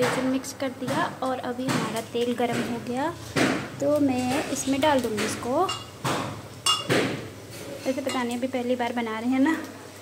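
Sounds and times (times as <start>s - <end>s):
metal knocking on iron pan: 0.0s - 4.4s.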